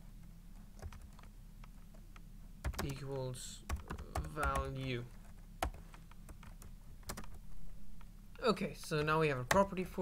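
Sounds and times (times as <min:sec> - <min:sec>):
computer keyboard keystrokes: 0:00.8 - 0:01.3, 0:02.6 - 0:03.0, 0:03.7 - 0:04.7, 0:05.6 - 0:07.4.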